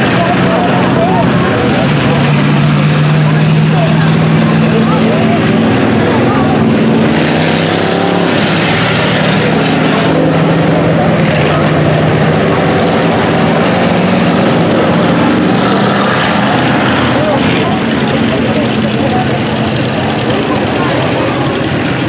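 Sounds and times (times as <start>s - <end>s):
race car engines droning: 0.0s - 22.0s.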